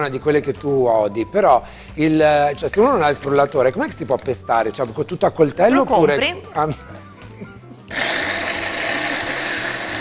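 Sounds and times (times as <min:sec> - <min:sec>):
electric blender running: 0:07.9 - 0:10.0.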